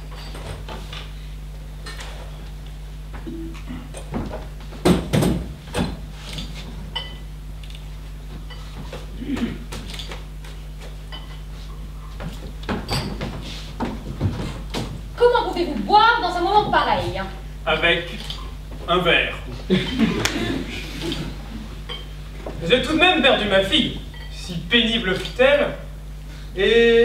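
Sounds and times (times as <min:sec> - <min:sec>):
low electrical hum: 0:00.0 - 0:27.0
glassware clinking: 0:06.9 - 0:07.3, 0:11.1 - 0:11.4, 0:12.9 - 0:13.2, 0:21.9 - 0:22.1, 0:24.1 - 0:24.4.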